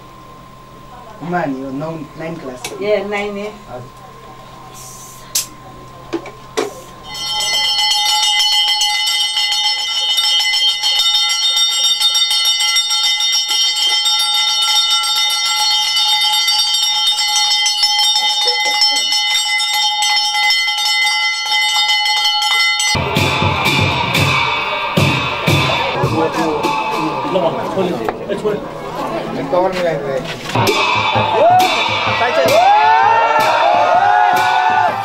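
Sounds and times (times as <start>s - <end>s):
worship bell ringing: 7.0s - 29.1s, 30.6s - 35.0s.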